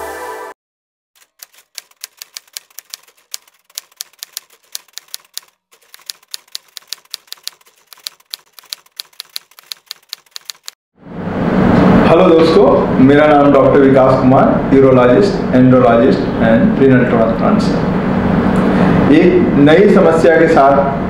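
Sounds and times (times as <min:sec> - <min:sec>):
typewriter key clicks: 0:01.2 - 0:10.8.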